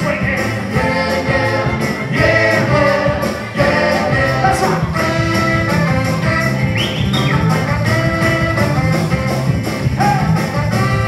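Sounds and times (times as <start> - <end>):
lead vocal singing: 0.0 - 5.8
live soul band playing: 0.0 - 11.0.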